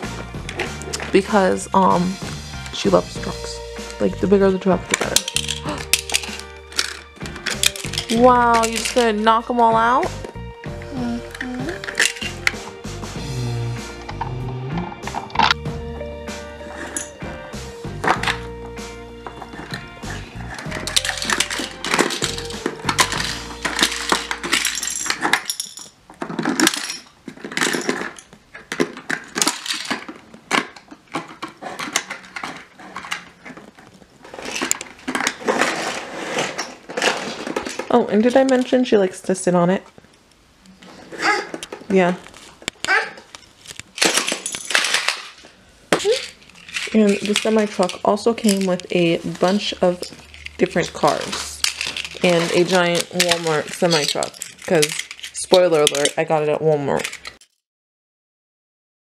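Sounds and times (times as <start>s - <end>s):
background music with bass line: 0.0s - 8.5s, 9.5s - 23.6s
toy cars clattering: 4.8s - 10.3s, 11.8s - 12.6s, 16.6s - 17.2s, 18.0s - 18.5s, 19.2s - 38.9s, 41.0s - 57.6s.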